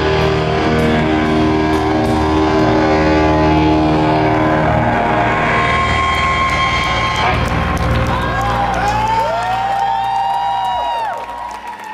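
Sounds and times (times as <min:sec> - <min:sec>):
rock band with distorted guitars: 0:00.0 - 0:10.1.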